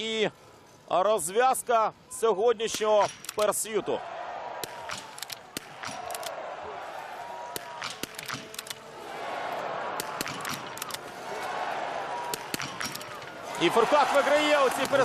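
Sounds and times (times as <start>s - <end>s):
murmur of spectators: 3.4s - 15.0s.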